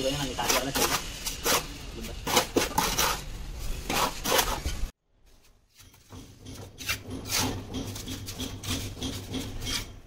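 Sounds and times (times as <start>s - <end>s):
trowel scraping mortar: 0.0s - 4.9s, 5.8s - 10.0s.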